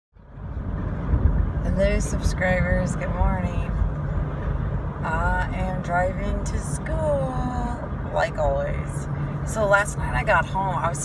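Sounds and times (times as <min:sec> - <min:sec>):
road and engine rumble in car: 0:00.2 - 0:11.0.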